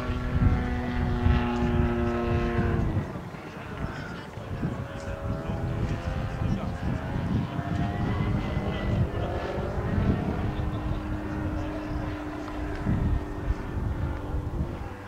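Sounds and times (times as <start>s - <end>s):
low rumbling noise: 0.0s - 15.0s
model plane engine passing overhead: 0.0s - 15.0s.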